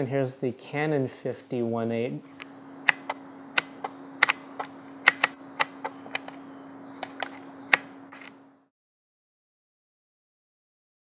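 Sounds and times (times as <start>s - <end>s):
steady low hum: 0.0s - 8.7s.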